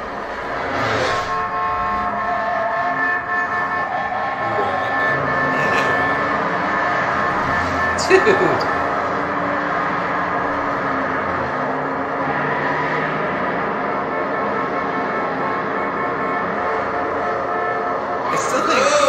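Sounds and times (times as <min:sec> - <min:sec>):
moving vehicle rumble: 0:00.0 - 0:19.0.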